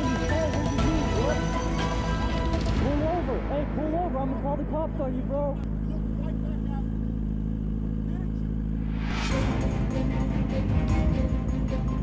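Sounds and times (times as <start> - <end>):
music: 0.0 - 5.7, 9.1 - 12.0
motorcycle engine idling: 0.0 - 12.0
rising rush of noise: 8.8 - 9.5.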